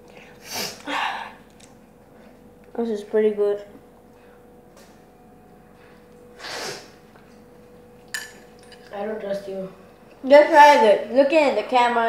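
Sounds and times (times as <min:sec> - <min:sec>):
spoon clinking on ceramic bowl: 0:08.1 - 0:08.9.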